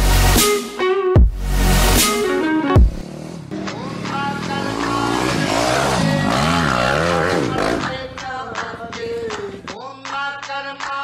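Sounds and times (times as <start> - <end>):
dirt bike engine revving: 3.0 - 8.2.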